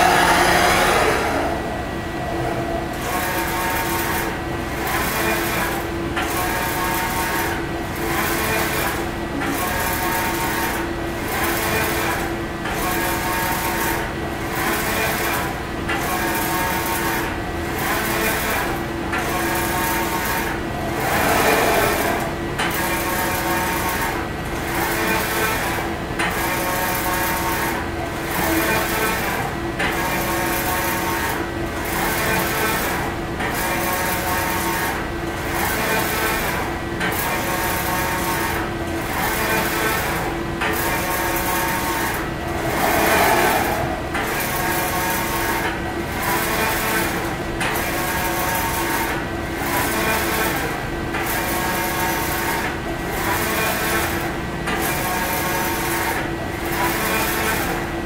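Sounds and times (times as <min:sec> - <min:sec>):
steady hum: 0:00.0 - 0:03.7, 0:20.4 - 0:23.3, 0:41.4 - 0:46.2
printer carriage motor whir: 0:00.0 - 0:03.9, 0:19.6 - 0:23.4.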